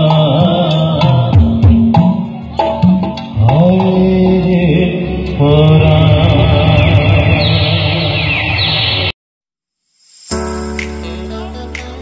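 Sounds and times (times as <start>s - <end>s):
man singing a long note: 11.0s - 12.0s.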